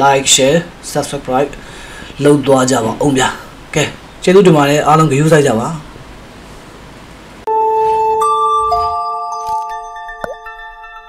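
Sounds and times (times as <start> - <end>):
low hiss: 0.0 - 7.4
struck chime tone: 7.5 - 11.0.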